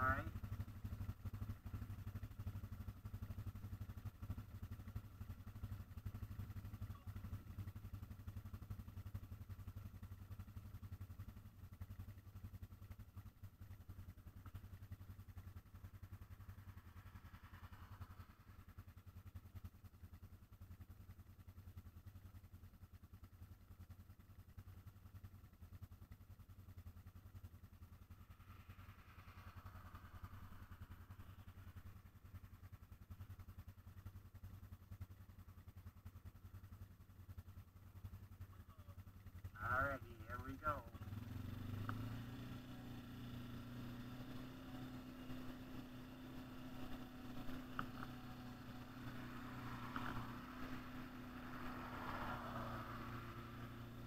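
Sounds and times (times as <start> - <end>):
engines idling: 0.0 - 54.0.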